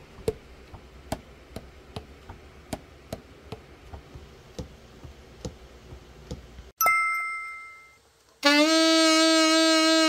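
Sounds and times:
saxophone long held note: 0:08.4 - 0:10.0.

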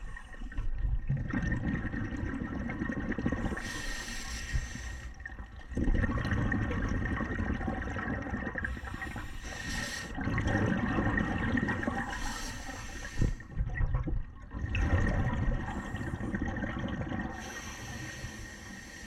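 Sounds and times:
gurgling exhaled bubbles: 0:00.0 - 0:18.6
regulator inhalation hiss: 0:03.6 - 0:05.1, 0:08.8 - 0:10.2, 0:12.1 - 0:13.4, 0:17.4 - 0:19.0.

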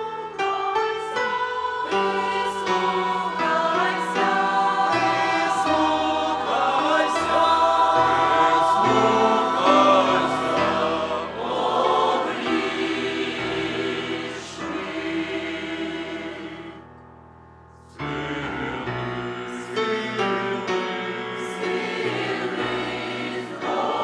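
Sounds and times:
choir singing: 0:00.0 - 0:16.9, 0:17.9 - 0:24.0.

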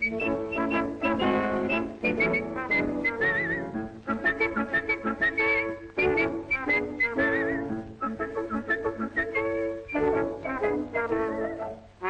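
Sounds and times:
person whistling a tune: 0:00.0 - 0:11.8
orchestral music: 0:00.0 - 0:12.0.

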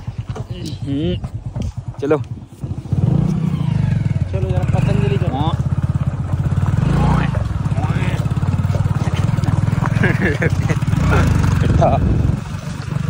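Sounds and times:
motorcycle engine running: 0:00.0 - 0:13.0.

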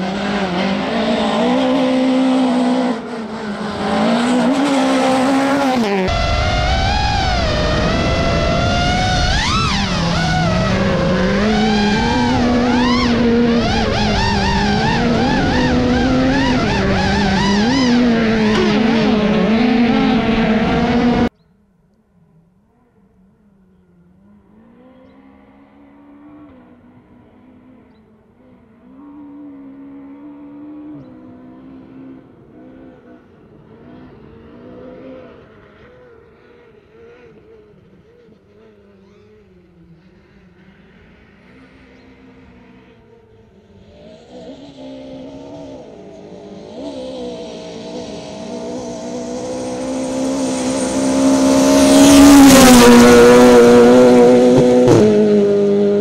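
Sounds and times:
rally car engine revving: 0:00.0 - 0:21.3, 0:23.7 - 0:56.0.

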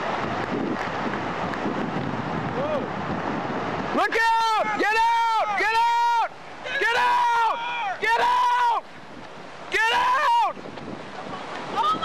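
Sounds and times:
steady rushing noise: 0:00.0 - 0:12.0
man screaming: 0:04.0 - 0:08.8, 0:09.7 - 0:10.6.

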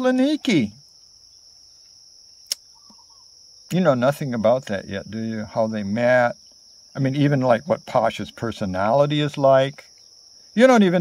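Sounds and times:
insects droning: 0:00.0 - 0:11.0
sharp click: 0:02.4 - 0:03.0.

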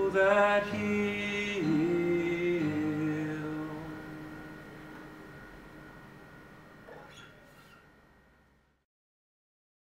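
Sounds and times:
acoustic guitar chord ringing: 0:00.0 - 0:08.8
guitar string squeak: 0:06.9 - 0:08.0.

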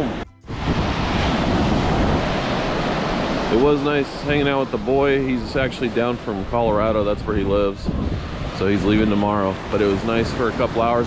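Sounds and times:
ocean surf: 0:00.0 - 0:11.0
wind noise: 0:00.0 - 0:11.0.

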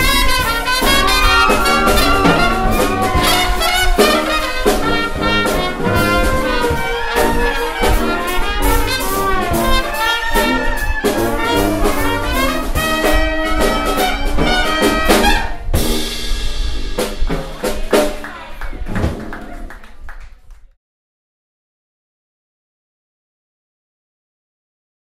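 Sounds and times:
jazz band playing: 0:00.0 - 0:18.3.

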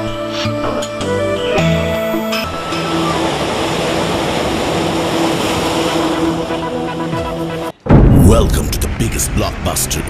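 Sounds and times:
sustained music tones: 0:00.0 - 0:10.0
waves breaking over rocks: 0:02.6 - 0:07.1.

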